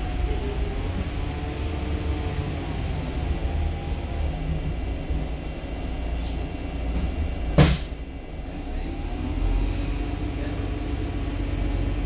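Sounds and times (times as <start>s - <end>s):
bus diesel engine rumble: 0.0s - 12.0s.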